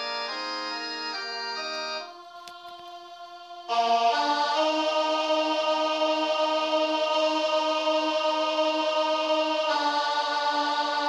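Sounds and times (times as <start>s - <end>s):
alto voice singing long note: 2.0s - 11.0s.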